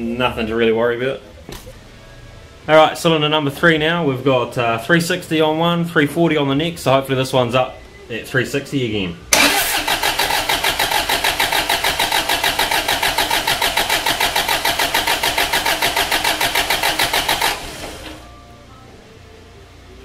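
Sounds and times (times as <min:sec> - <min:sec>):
engine cranking without firing: 0:09.3 - 0:18.3.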